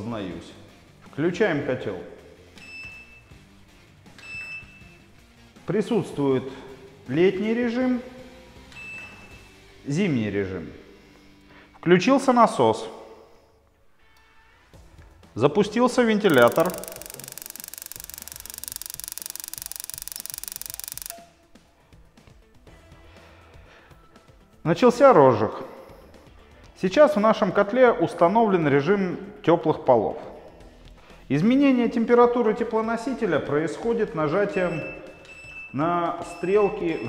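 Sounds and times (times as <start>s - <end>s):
boiler spark ignition clicking: 16.3s - 21.3s
control panel beeping: 16.3s - 21.3s.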